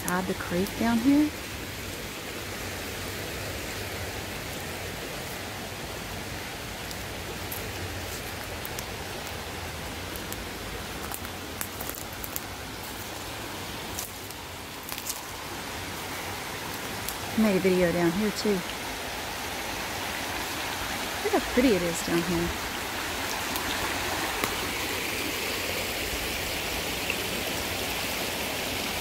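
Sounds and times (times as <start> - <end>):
creek water rushing over rocks: 0.0 - 29.0
footsteps on leaf litter: 13.9 - 15.3.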